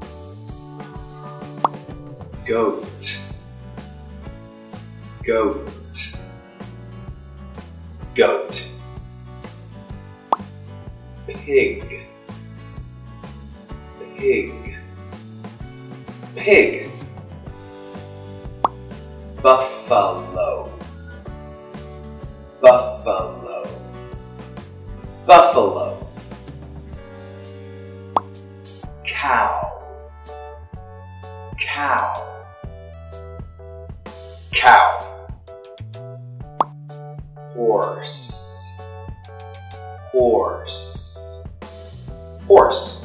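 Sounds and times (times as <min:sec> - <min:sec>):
background music with held notes: 0:00.0 - 0:43.0
sharp pop sound effect: 0:01.5 - 0:02.0.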